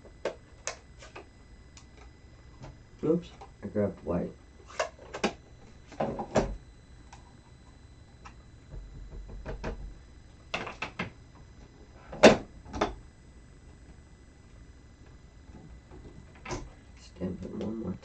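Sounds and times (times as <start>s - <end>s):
plastic cases knocking and clicking: 8.7s - 11.1s.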